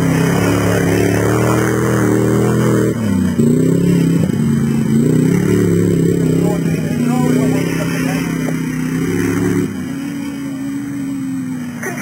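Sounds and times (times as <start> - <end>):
engine revving hard: 0.0 - 12.0.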